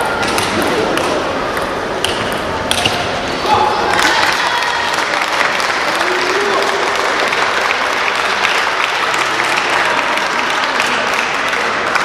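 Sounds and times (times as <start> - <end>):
hall background noise: 0.0 - 12.0.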